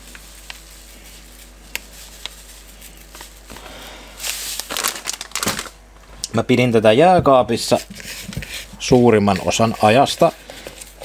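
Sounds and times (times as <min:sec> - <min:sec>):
plastic bag crinkling: 0:00.0 - 0:06.3.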